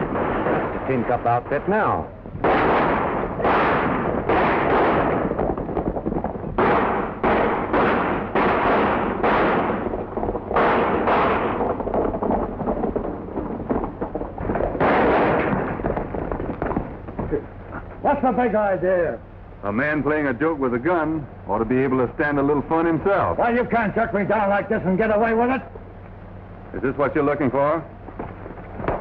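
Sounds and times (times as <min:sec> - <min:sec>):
gunshots with echo: 0:00.0 - 0:17.2.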